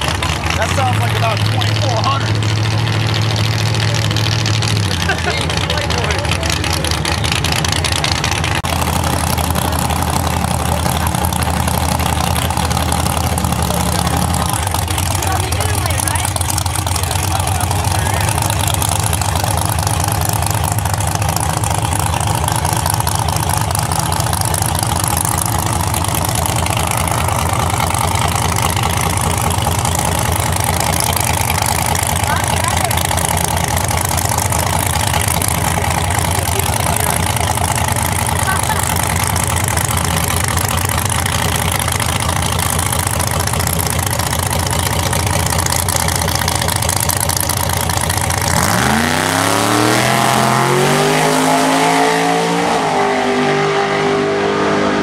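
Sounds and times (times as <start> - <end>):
race car engine idling and revving: 0.0 - 55.0.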